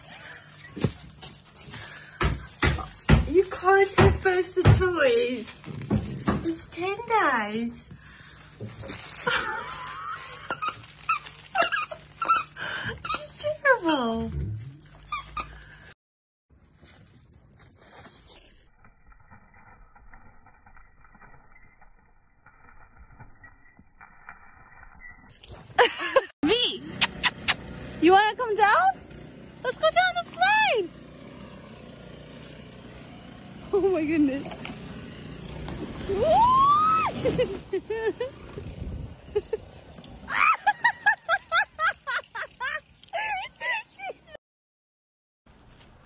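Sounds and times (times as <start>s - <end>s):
squeaky toy squeaks: 10.5s - 14.2s, 15.0s - 15.6s.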